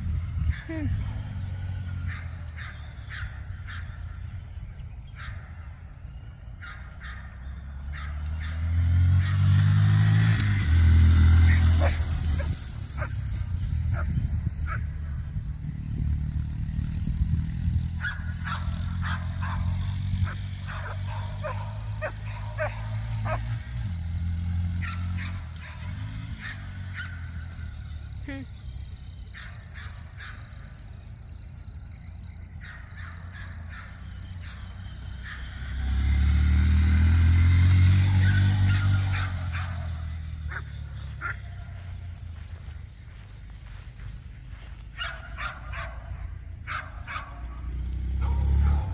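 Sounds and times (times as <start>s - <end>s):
dogs barking and yipping: 0.0s - 15.6s, 17.4s - 48.9s
minibike engine droning: 0.0s - 48.9s.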